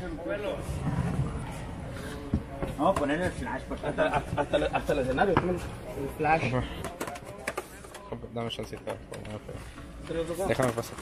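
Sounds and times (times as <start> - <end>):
men talking: 0.0 - 0.8, 2.3 - 11.0.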